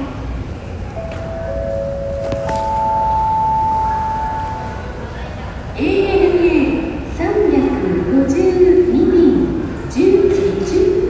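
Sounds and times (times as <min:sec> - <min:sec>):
terminal hall hum: 0:00.0 - 0:11.0
public-address chime tones: 0:00.9 - 0:06.1.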